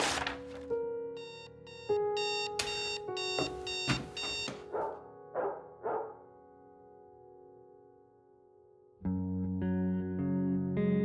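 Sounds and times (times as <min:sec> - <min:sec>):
soft piano music: 0:00.0 - 0:11.0
alarm clock beeping: 0:01.2 - 0:05.6.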